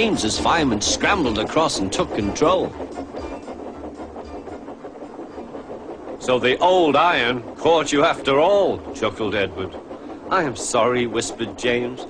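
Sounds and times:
steam locomotive chuffing: 0:00.0 - 0:12.0
wheels clattering on rails: 0:00.0 - 0:12.0.

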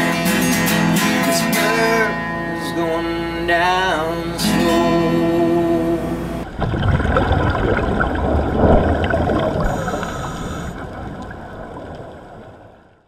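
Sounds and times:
guitar chord: 0:00.0 - 0:06.4
muffled underwater rumble: 0:05.4 - 0:13.0
gurgling bubbles: 0:06.4 - 0:13.0.

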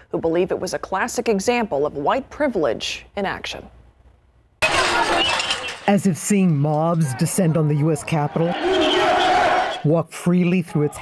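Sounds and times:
people shouting: 0:04.6 - 0:05.9, 0:06.8 - 0:09.8.

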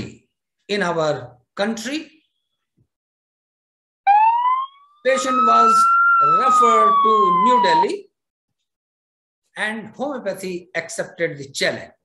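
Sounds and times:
ambulance siren wailing: 0:04.0 - 0:08.1.

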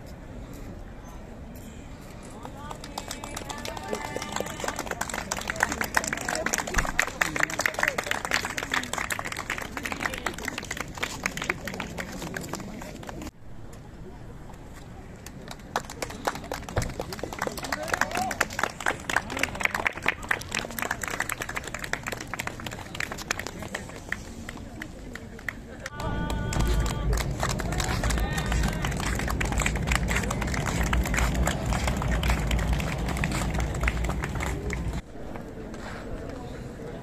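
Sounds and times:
people's voices: 0:00.0 - 0:37.0
loud steady low rumble: 0:25.9 - 0:35.0.

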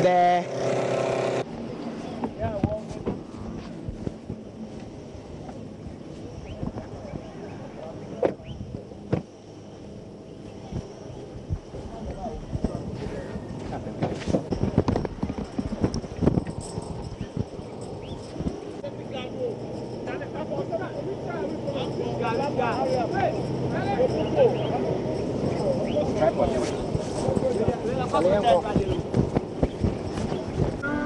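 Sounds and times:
people talking indistinctly: 0:18.8 - 0:30.0.

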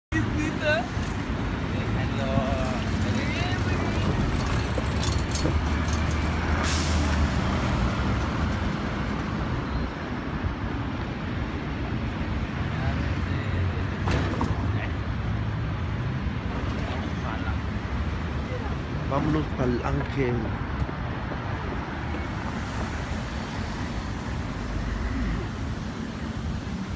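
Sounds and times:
vehicles passing: 0:00.1 - 0:26.9
voices of passers-by: 0:00.1 - 0:26.9.

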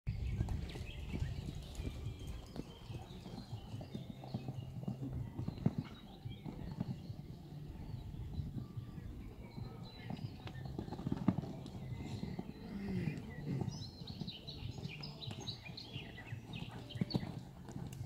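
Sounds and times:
horse hoofbeats on sand: 0:00.1 - 0:18.0.

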